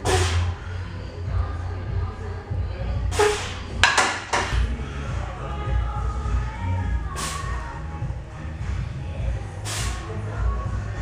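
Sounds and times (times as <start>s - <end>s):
sharp forceful breaths: 0.0s - 0.6s, 3.1s - 5.1s, 7.1s - 7.6s, 9.6s - 10.1s
background music with low bass: 0.0s - 11.0s.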